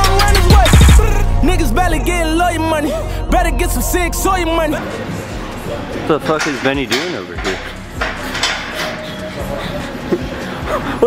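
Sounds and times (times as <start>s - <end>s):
faint voices: 4.6s - 11.0s
gym equipment clinking: 6.2s - 9.2s.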